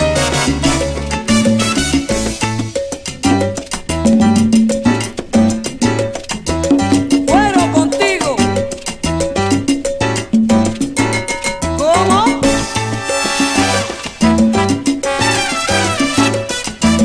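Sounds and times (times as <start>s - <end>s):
salsa orchestra music: 0.0s - 17.0s.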